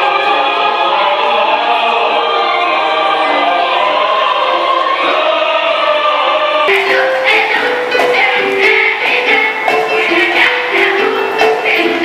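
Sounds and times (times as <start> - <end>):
choir singing long held notes: 0.0 - 12.0
girls' choir singing: 0.0 - 12.0
drum hits: 6.7 - 11.8.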